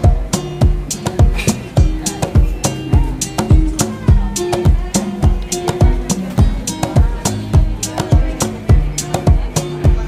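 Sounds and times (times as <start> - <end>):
background music with drum beat: 0.0 - 10.0.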